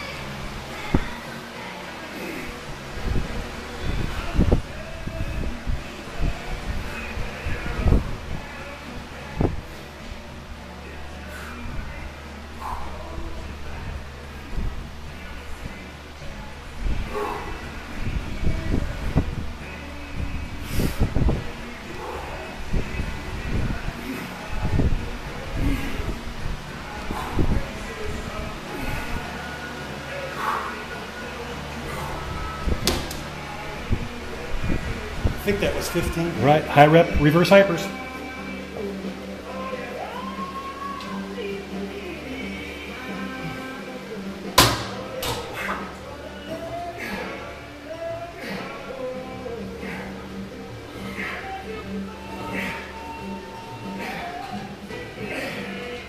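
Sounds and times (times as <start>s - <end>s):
background music: 0.0s - 56.0s
steady low hum: 0.0s - 56.0s.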